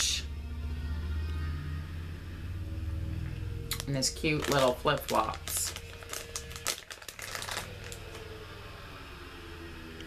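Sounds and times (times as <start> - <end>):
plastic bag crinkling: 3.7 - 8.4.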